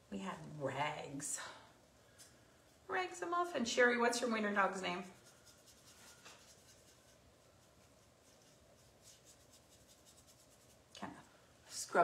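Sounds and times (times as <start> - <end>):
paintbrush scrubbing on wood: 4.5 - 10.9.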